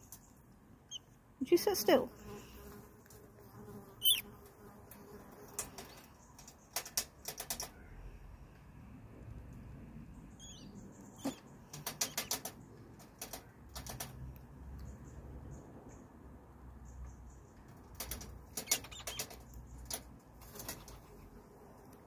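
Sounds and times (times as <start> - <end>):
rat rattling metal cage bars: 11.2 - 14.1, 17.9 - 21.0.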